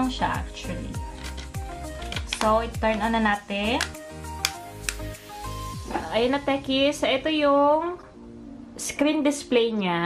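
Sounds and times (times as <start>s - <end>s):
soft music with bass line: 0.0s - 10.0s.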